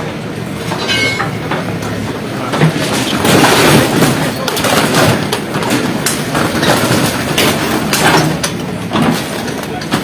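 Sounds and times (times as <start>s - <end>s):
digger engine running: 0.0s - 10.0s
people's voices: 0.0s - 10.0s.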